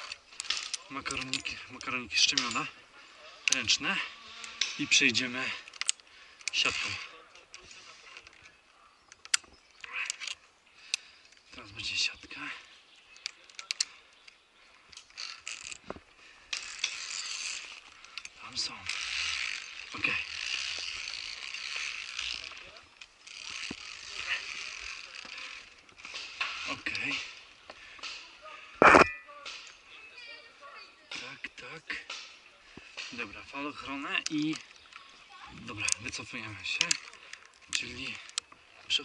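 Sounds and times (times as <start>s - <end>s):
carabiners clicking on steel cable: 0.0s - 29.9s, 31.1s - 39.0s.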